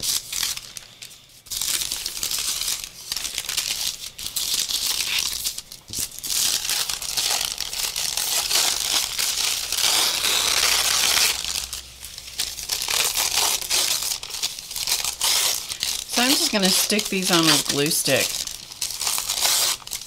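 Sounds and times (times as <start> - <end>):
paper crinkling and rustling: 0.0 - 20.0.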